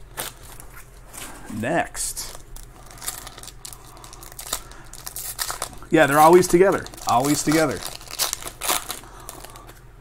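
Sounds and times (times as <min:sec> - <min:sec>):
foil wrapper crinkling: 0:02.1 - 0:09.8.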